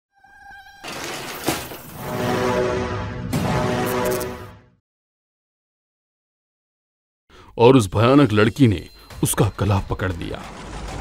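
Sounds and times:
buzzing tone: 0.1 - 0.9.

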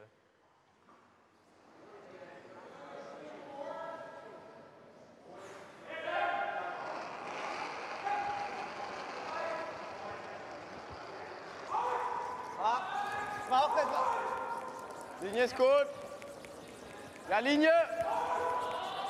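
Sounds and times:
players calling across ice: 11.4 - 19.0
people shouting: 11.7 - 15.0, 17.9 - 19.0.

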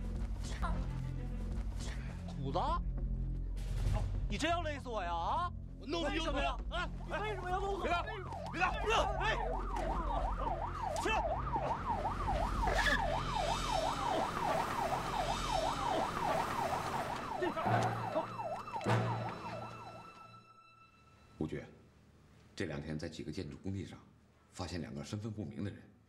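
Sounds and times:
police siren yelping: 7.1 - 20.6.

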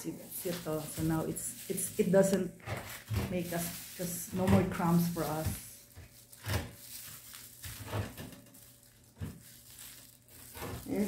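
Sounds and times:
spoon scraping clay mud on paper: 0.1 - 11.0.

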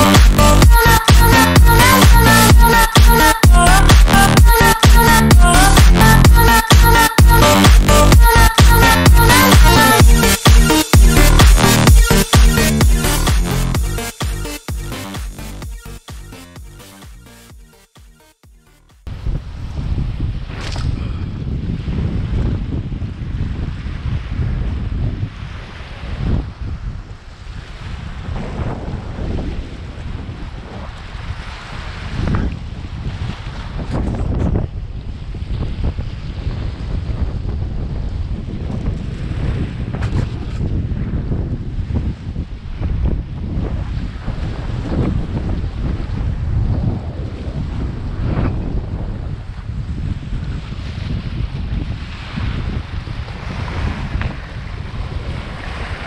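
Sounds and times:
wind buffeting microphone: 19.1 - 56.0.

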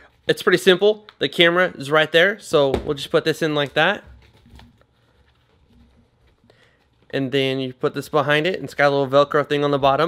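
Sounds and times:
soft rustling: 2.9 - 8.6.

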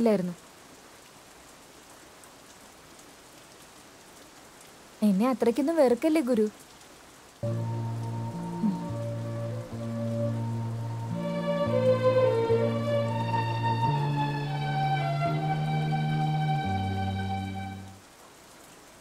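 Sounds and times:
steady rain-like hiss: 0.0 - 19.0
soft background music chords: 7.4 - 18.0
person speaking: 8.2 - 9.8.

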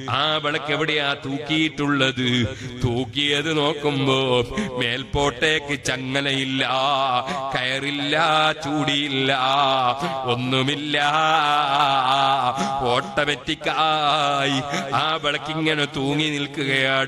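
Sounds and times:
man chanting devotional recitation: 0.0 - 17.0.

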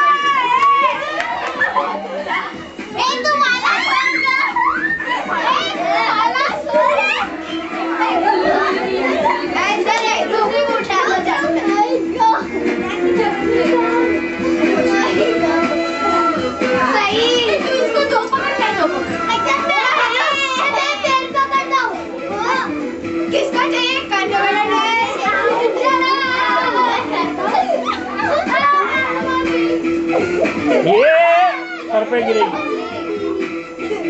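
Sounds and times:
background music: 0.0 - 34.0
children playing and calling out: 0.0 - 34.0
girls shouting and chattering: 0.0 - 34.0.

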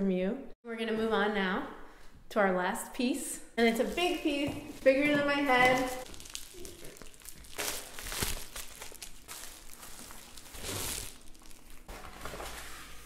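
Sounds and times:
bubble mailer rustling and crinkling: 3.7 - 13.0.

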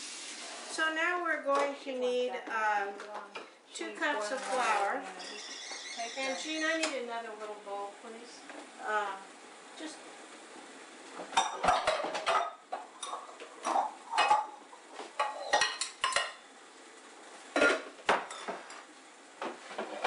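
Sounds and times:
metal kitchenware clattering: 11.4 - 14.6, 15.2 - 16.4, 17.6 - 18.5.

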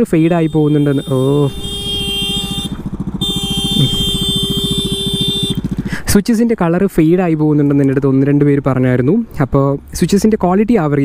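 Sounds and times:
motorcycle engine thumping: 1.6 - 6.1.

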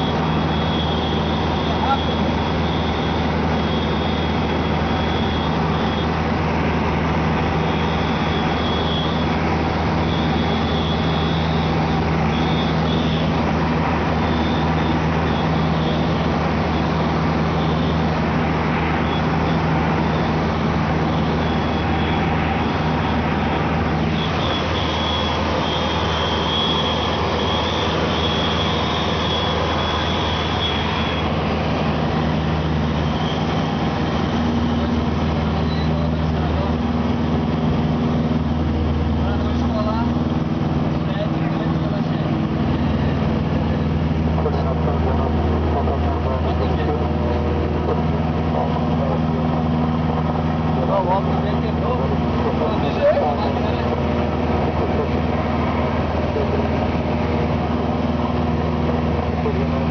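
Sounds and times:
airplane engine and propeller: 0.0 - 59.9.

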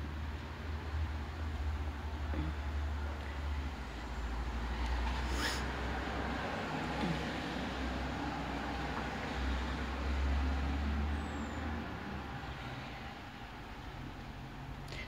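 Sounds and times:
distant road traffic rumble: 0.0 - 15.0
vehicle passing: 0.8 - 14.6.

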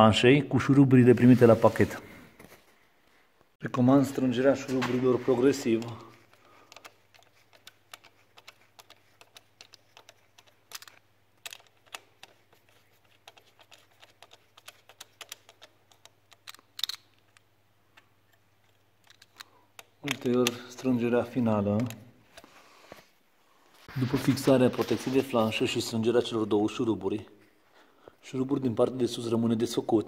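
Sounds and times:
screwdriver clicking on bolts: 5.8 - 17.4.

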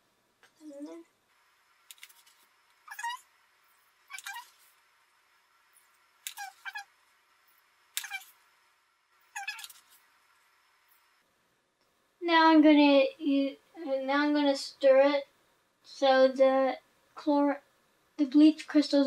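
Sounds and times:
spoon squeaking against plastic bottle: 4.1 - 4.6, 6.3 - 6.9, 8.0 - 8.3, 9.3 - 9.9.

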